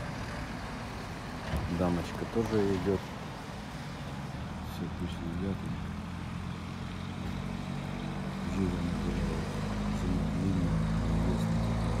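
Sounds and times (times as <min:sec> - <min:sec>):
motor vehicle engine humming: 0:00.0 - 0:12.0
traffic noise: 0:00.0 - 0:12.0.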